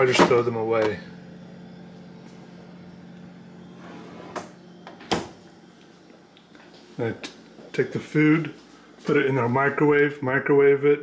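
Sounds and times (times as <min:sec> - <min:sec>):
refrigerator humming: 0:00.0 - 0:11.0.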